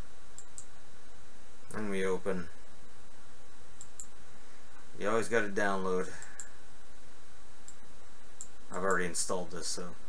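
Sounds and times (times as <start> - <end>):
steady background hiss: 0.0 - 10.0
computer mouse clicking: 0.4 - 0.7, 3.8 - 4.2.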